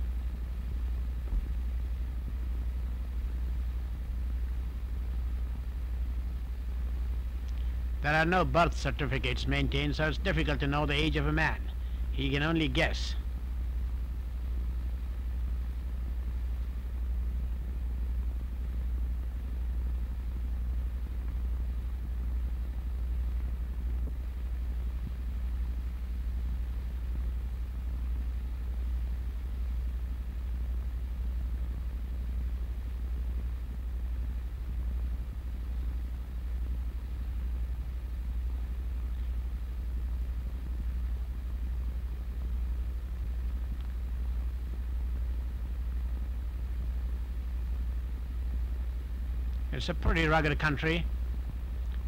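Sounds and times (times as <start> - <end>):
faint hiss: 0.0 - 52.0
low hum: 0.0 - 52.0.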